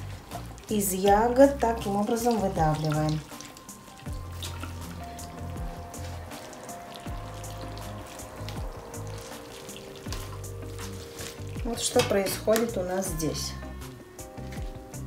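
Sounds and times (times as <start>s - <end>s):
juice dripping and crackling: 0.0s - 15.0s
soft music with held notes: 0.0s - 15.0s.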